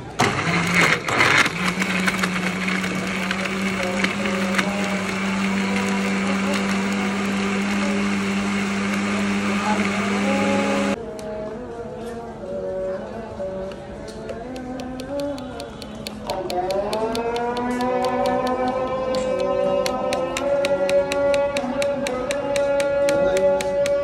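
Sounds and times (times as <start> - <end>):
blender motor hum: 0.2 - 11.0
fruit rattling in blender jar: 0.3 - 9.6.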